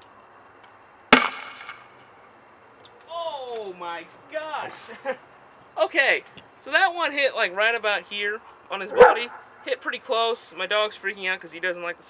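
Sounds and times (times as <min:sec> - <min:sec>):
grenade launcher bang: 0:01.1 - 0:01.9.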